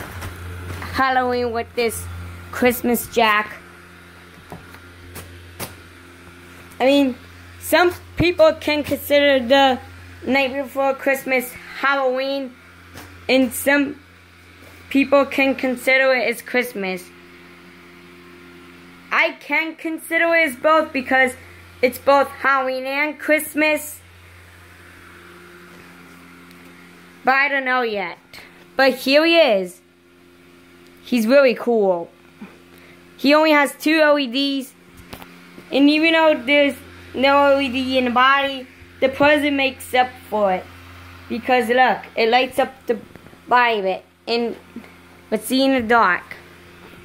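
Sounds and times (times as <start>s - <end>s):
blower fan humming: 0.0s - 47.0s.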